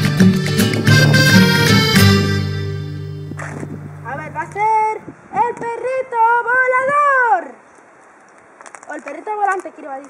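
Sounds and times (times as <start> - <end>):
person speaking: 4.0 - 7.5.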